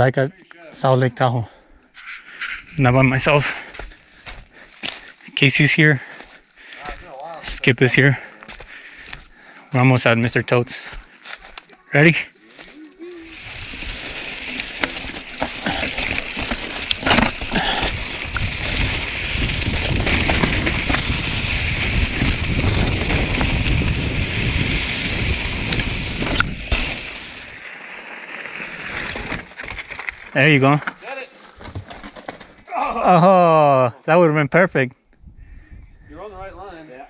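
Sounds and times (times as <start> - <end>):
mountain bike tyres on dirt trail: 1.5 - 33.7
bike knocking over bumps: 13.7 - 24.3, 31.5 - 32.7.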